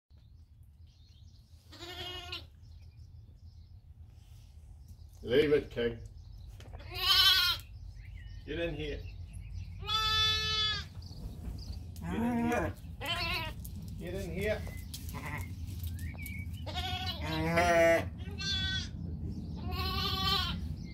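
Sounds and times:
sheep bleating: 1.7s - 2.5s, 6.8s - 7.6s, 9.8s - 10.9s, 12.0s - 13.6s, 15.1s - 15.5s, 16.6s - 18.9s, 19.6s - 20.6s.

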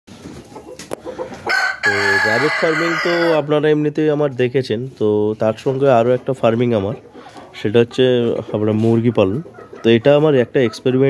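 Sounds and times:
rooster crowing: 1.5s - 3.5s
faint clucking: 6.1s - 11.0s.

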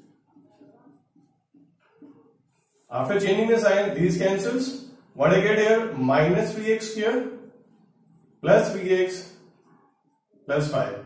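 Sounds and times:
marker squeaking on whiteboard: 0.0s - 4.5s.

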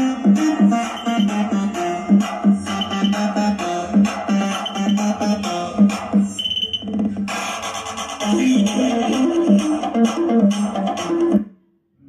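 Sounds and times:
music with pulsing beat: 0.0s - 11.5s
short high held tone: 2.7s - 3.2s.

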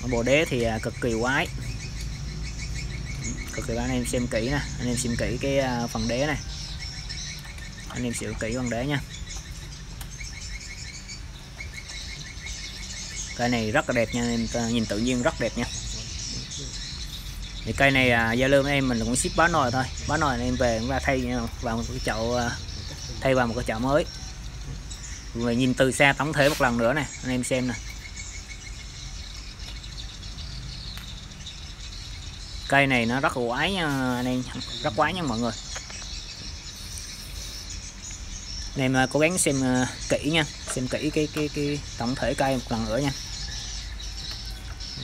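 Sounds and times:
bird chirping: 0.0s - 45.0s.

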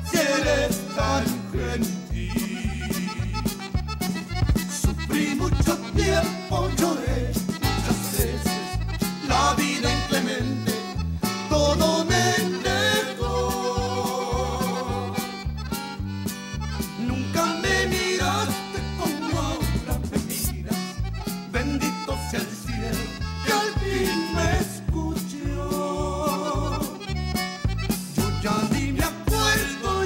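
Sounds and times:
accordion melody: 0.0s - 30.0s
band playing: 0.0s - 30.0s.

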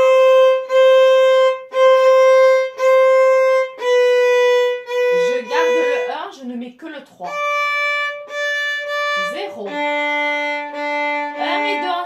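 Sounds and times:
violin long bowed notes: 0.0s - 6.3s, 7.2s - 12.0s.

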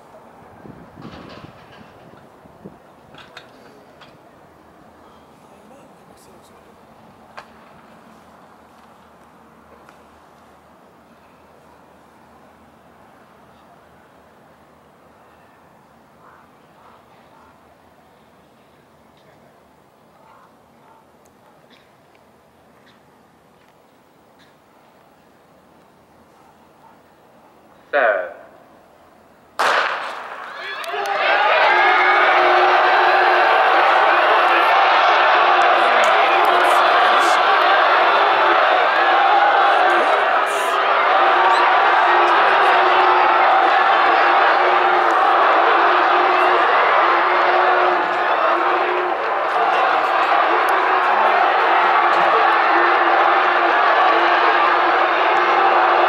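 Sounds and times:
person giving spoken command: 27.9s - 28.5s, 35.8s - 41.4s
starting pistol crack: 29.6s - 30.5s
stadium background rumble: 29.6s - 56.0s.

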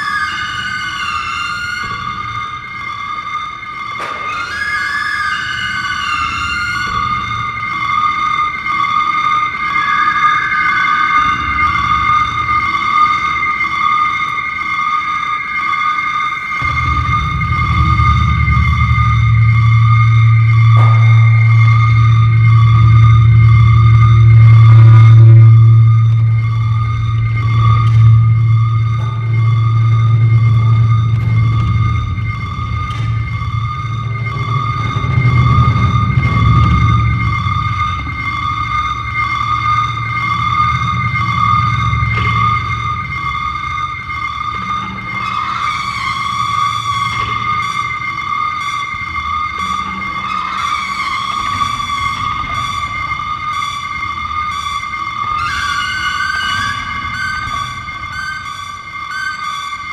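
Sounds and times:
sustained high sliding tones: 0.0s - 59.9s
deep low drone: 16.6s - 58.8s.

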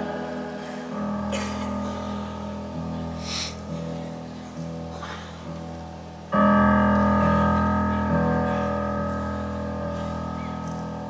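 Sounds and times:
piano chords on keyboard: 0.0s - 11.0s.

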